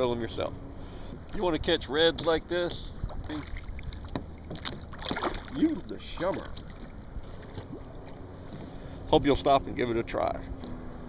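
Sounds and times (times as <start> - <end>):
wind rumble on microphone: 1.2 - 9.8.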